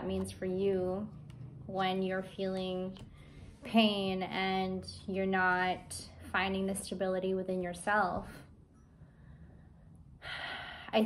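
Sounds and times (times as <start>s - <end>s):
woman speaking: 0.0s - 3.0s, 3.6s - 8.5s
woman breathing in: 9.0s - 10.9s.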